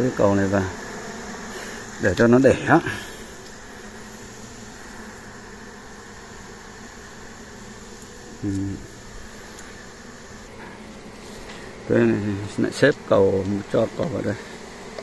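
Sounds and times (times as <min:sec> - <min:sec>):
bees buzzing: 0:00.0 - 0:15.0.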